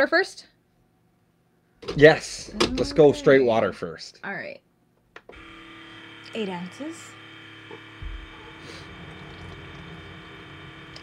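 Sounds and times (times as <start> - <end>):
coffee maker electric hum: 1.9 - 3.9, 5.2 - 11.0
pump low rumble: 7.8 - 11.0.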